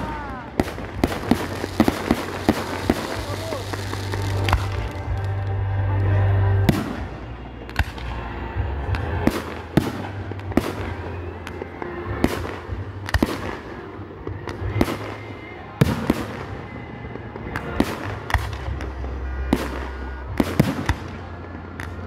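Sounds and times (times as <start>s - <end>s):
fireworks bursting with bangs: 0.0s - 5.8s, 6.5s - 22.0s
low rumble: 0.0s - 22.0s.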